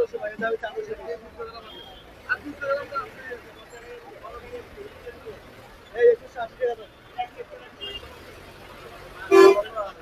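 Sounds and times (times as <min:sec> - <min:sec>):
street market chatter: 0:00.0 - 0:10.0
vehicle horn honking: 0:09.3 - 0:09.8.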